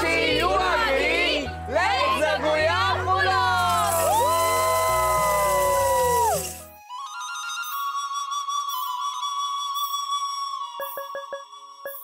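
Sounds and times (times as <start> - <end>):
low background music: 0.0 - 7.8
group cheering: 2.0 - 6.6.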